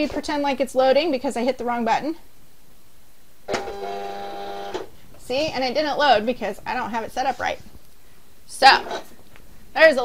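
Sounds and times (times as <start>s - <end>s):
cutting machine motor whine: 3.5s - 4.9s.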